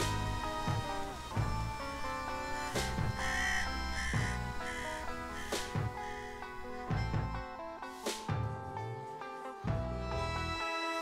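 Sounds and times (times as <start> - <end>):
background music: 0.0 - 11.0
crow cawing: 1.4 - 7.5.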